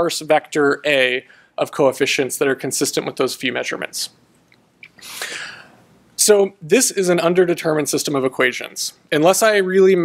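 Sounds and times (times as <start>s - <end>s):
mouth click: 4.4s - 5.0s
man breathing in: 5.0s - 5.9s.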